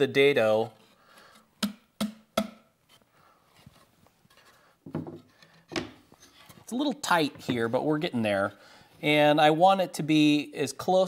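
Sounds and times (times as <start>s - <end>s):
sharp wooden knocks: 1.6s - 2.6s.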